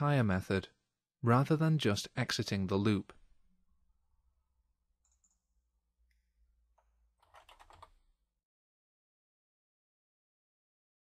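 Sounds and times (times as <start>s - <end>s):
computer keyboard typing: 5.0s - 5.4s, 7.2s - 8.0s.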